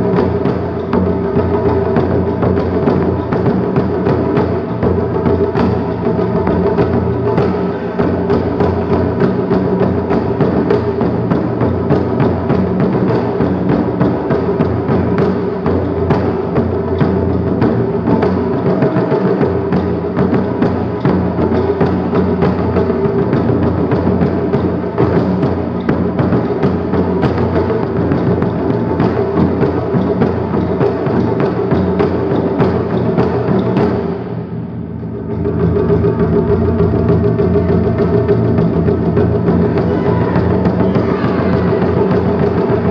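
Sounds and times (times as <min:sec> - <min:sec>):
taiko drums played fast: 0:00.0 - 0:42.9.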